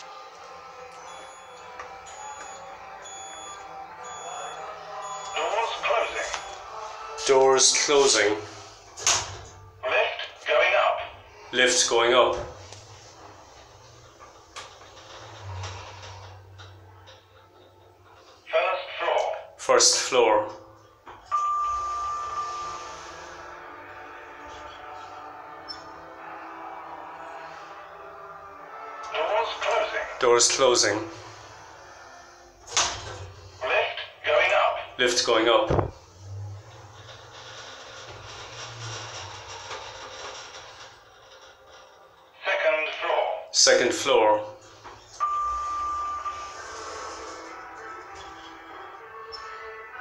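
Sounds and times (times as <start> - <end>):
steady background noise: 0.0 - 49.0
lift beep: 1.0 - 7.2, 21.3 - 23.2, 45.1 - 47.3.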